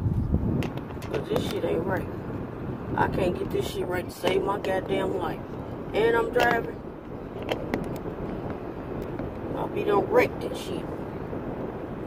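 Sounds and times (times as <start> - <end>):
car road and engine rumble: 0.0 - 12.0
light clicks and knocks: 0.6 - 1.6, 7.3 - 9.4.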